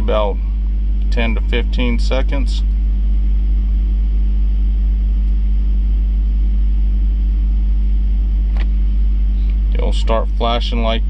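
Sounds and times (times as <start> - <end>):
engine rumble: 0.0 - 11.0.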